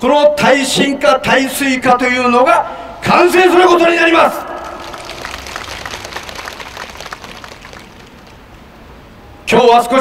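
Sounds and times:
crowd applauding: 0:04.6 - 0:08.5.

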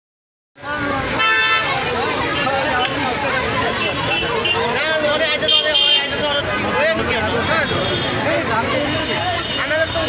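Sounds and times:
street crowd chatter: 0:00.6 - 0:10.0
vehicle horn toot: 0:01.2 - 0:01.7.

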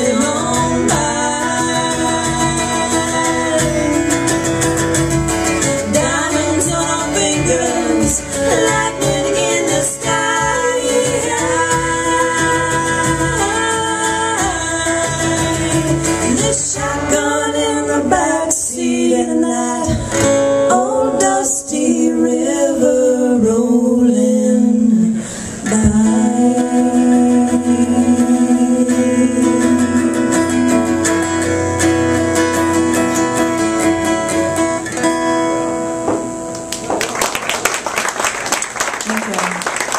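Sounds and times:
women singing: 0:00.0 - 0:04.6, 0:05.6 - 0:31.1
cajon drum: 0:00.0 - 0:17.3, 0:19.8 - 0:20.7, 0:25.7 - 0:26.4, 0:29.7 - 0:39.9
strummed acoustic guitar: 0:00.0 - 0:37.0
audience applause: 0:36.5 - 0:39.9.

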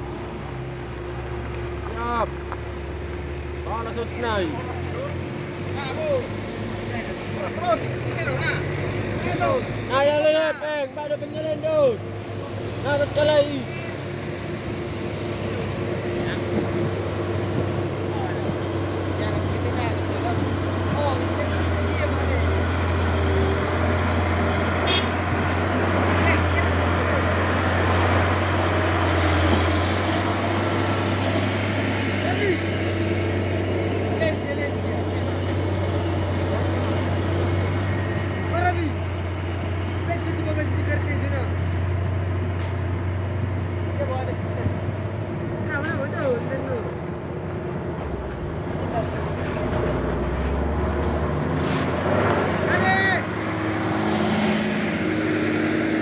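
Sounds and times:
onlookers talking: 0:00.0 - 0:56.0
truck diesel engine labouring: 0:00.0 - 0:56.0
tyre and road noise: 0:00.0 - 0:56.0.

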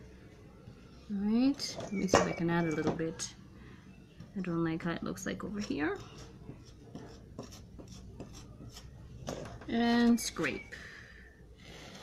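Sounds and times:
cake scraper scraping icing: 0:05.4 - 0:09.0.

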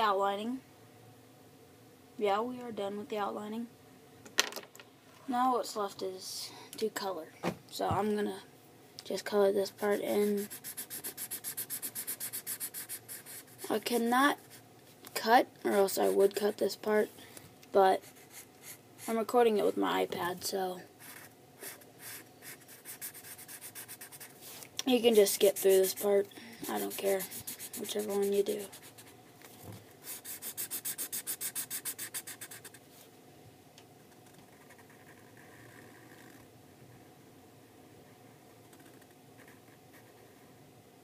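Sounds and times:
marker scribbling on paper: 0:09.8 - 0:14.6, 0:21.0 - 0:29.1, 0:30.0 - 0:32.8.

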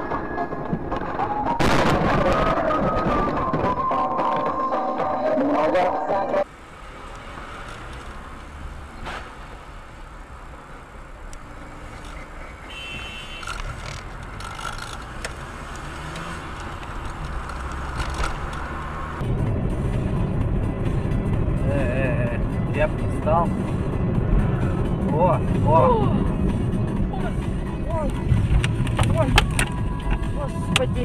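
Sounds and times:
car engine and road noise: 0:00.0 - 0:31.0
music: 0:19.2 - 0:31.0.

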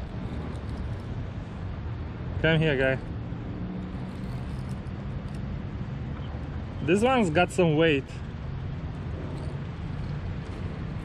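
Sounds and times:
road traffic hum: 0:00.0 - 0:11.0.

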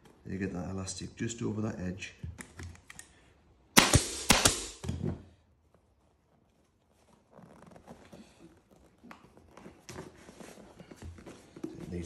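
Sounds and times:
pneumatic staple gun firing: 0:03.8 - 0:04.8
faint fabric rustling: 0:05.3 - 0:12.0.

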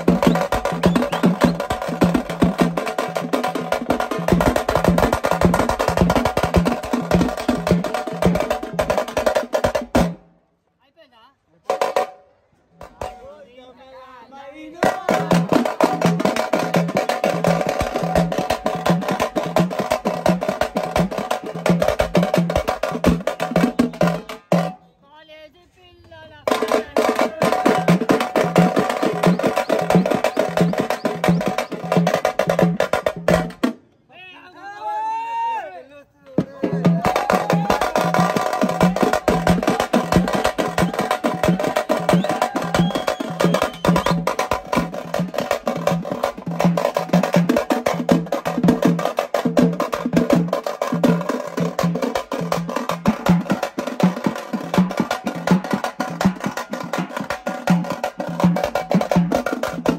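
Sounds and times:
band playing dance music: 0:00.0 - 0:04.9, 0:26.1 - 0:32.9, 0:36.4 - 0:48.8
fast pulsing drum beat: 0:00.0 - 0:10.2, 0:14.7 - 0:24.8, 0:26.4 - 0:33.7, 0:36.4 - 0:59.9.

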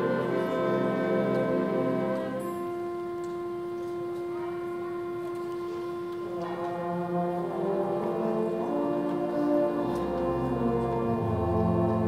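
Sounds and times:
wind instrument holding a note: 0:00.0 - 0:12.0.

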